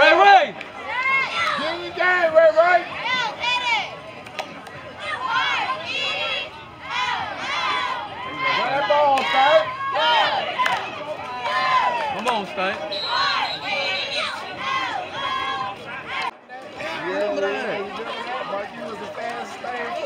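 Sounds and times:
cheerleaders shouting a cheer: 0.0s - 4.0s, 4.9s - 12.2s, 12.8s - 16.3s
crowd noise: 0.0s - 20.0s.

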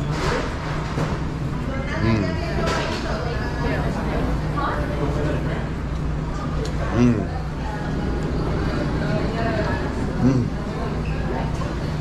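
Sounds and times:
steady low hum: 0.0s - 12.0s
indistinct voices talking: 6.9s - 7.4s, 10.2s - 10.8s.

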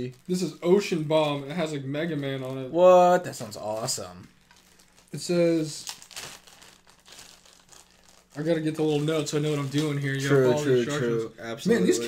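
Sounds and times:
packaging crinkling and rustling: 0.0s - 2.7s, 3.3s - 10.4s.

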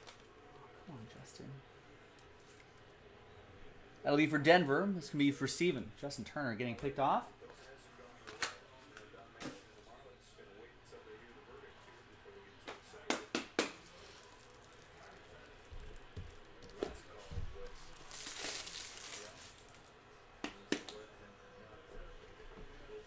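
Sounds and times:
plastic packaging crinkling: 13.9s - 15.5s, 17.6s - 19.8s.

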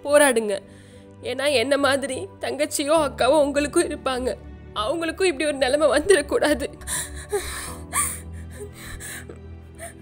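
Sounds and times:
background music: 0.0s - 10.0s
woman sobbing: 6.0s - 10.0s.

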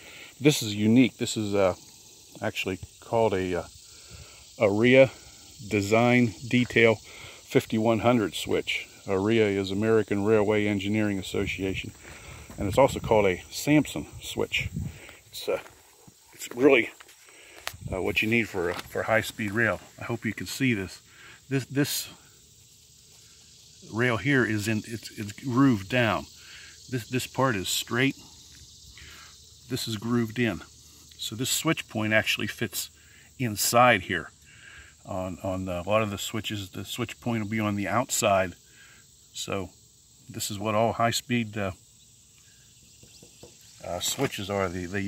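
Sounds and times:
high-pitched insect chorus: 0.0s - 45.0s.

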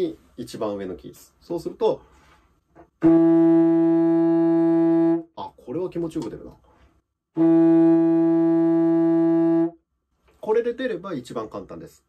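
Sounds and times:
contrabassoon long steady note: 3.0s - 5.3s, 7.4s - 9.8s.

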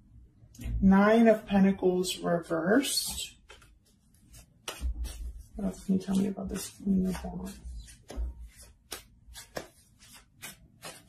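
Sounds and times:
cards being shuffled: 3.1s - 11.0s.

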